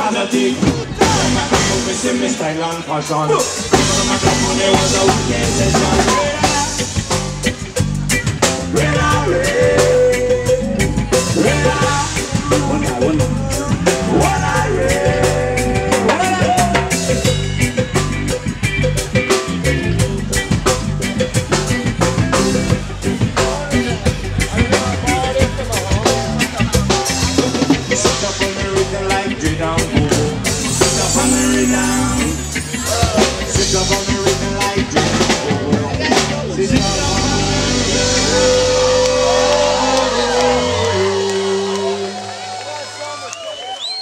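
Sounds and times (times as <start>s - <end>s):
reggae band music: 0.0s - 44.0s.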